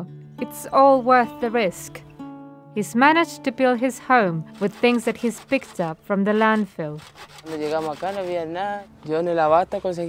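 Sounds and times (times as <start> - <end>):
handsaw rasping through wood: 4.5 - 8.7.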